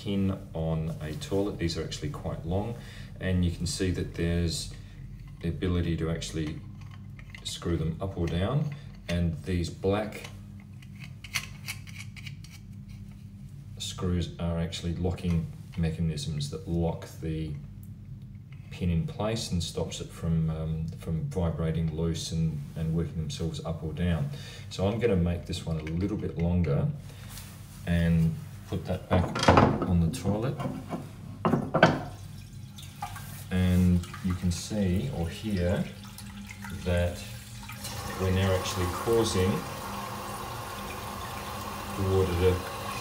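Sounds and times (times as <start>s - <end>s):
low steady hum: 0.0s - 43.0s
water trickling: 32.0s - 43.0s.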